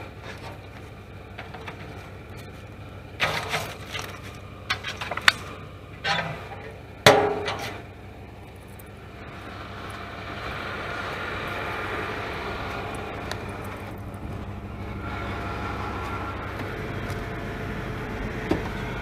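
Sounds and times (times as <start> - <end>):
vehicle engine idling: 0.0 - 19.0.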